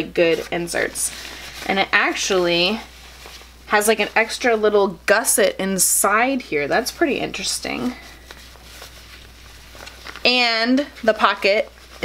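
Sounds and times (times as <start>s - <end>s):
fabric rustling: 0.0s - 5.5s, 6.7s - 12.0s
low steady hum: 0.0s - 12.0s.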